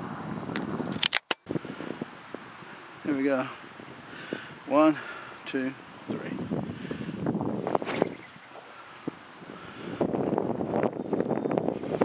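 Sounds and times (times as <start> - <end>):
outdoor background noise: 0.0 - 12.0
camera handling clicks: 0.6 - 1.4.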